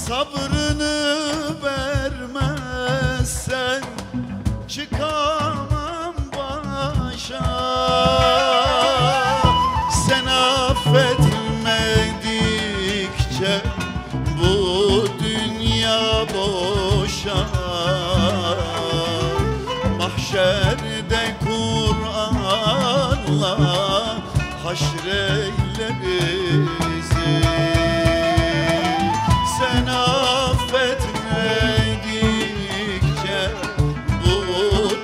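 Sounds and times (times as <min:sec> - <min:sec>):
hand drum strokes: 0:00.0 - 0:35.0
man singing with vibrato: 0:00.0 - 0:35.0
string ensemble: 0:07.1 - 0:35.0.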